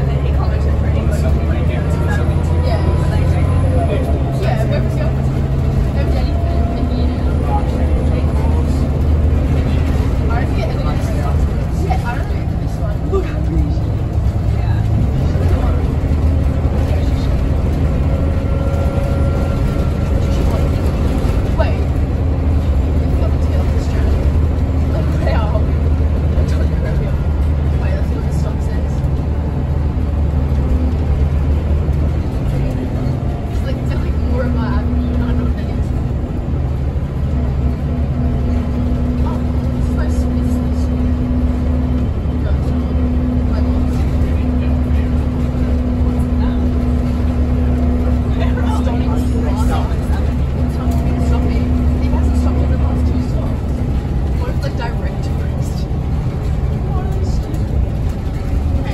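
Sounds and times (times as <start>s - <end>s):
bus diesel engine droning: 0.0s - 58.9s.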